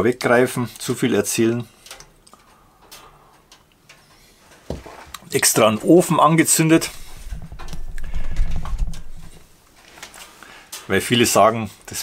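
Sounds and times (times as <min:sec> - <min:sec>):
wood fire crackling in stove: 0:00.0 - 0:12.0.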